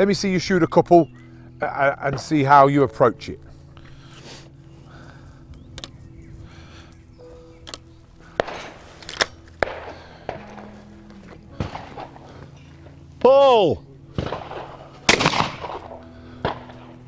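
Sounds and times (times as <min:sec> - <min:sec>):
soft background music: 0:00.0 - 0:17.0.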